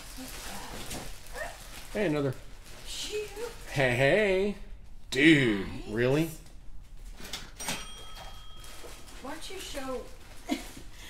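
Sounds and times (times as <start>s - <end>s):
plastic bag crinkling: 0.0s - 4.2s, 8.5s - 11.0s.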